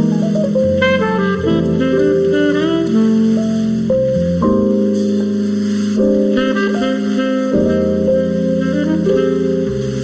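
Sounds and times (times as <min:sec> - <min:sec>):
bass line: 0:00.0 - 0:10.0
saxophone melody: 0:00.0 - 0:10.0.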